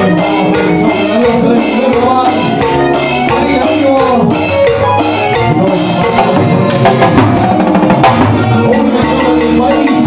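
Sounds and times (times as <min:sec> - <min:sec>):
cumbia band playing: 0:00.0 - 0:10.0.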